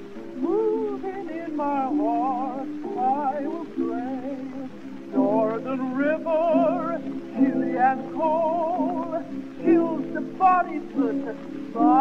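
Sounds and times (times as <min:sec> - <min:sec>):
woman singing with vibrato: 0:00.4 - 0:12.0.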